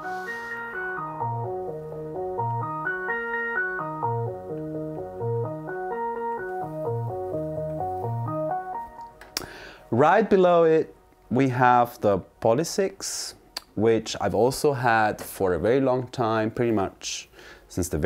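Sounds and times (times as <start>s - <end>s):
synthesizer arpeggio: 0.0s - 9.3s.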